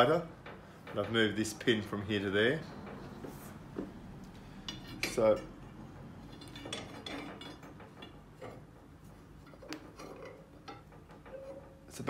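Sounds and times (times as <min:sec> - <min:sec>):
metallic clinks and knocks: 0:04.6 - 0:11.9.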